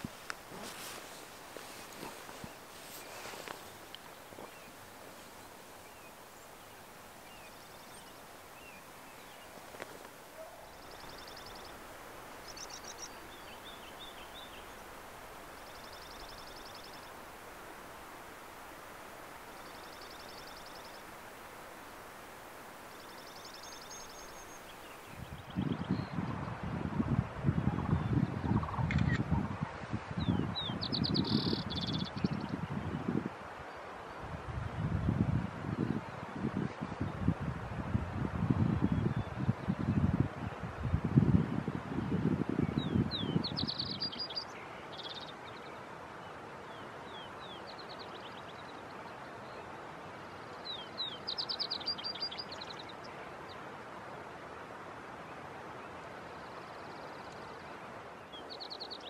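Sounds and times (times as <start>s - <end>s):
faint outdoor hiss: 0.0s - 59.0s
songbird trilling: 10.4s - 14.9s
wind buffeting microphone: 24.6s - 33.4s, 34.2s - 44.1s.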